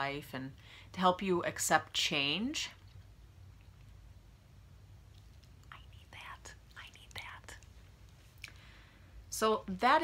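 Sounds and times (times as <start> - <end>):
woman whispering: 5.6 - 7.7.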